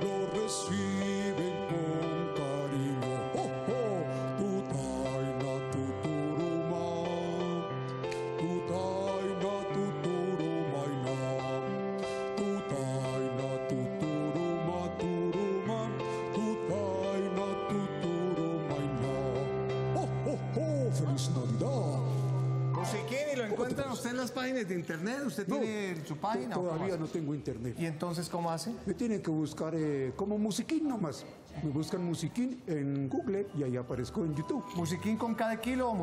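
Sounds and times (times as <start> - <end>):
person singing wordless glides: 0.0 - 23.1.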